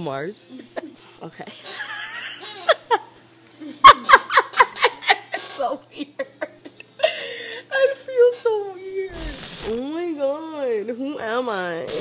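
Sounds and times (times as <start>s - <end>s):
woman laughing hard: 1.7s - 8.2s.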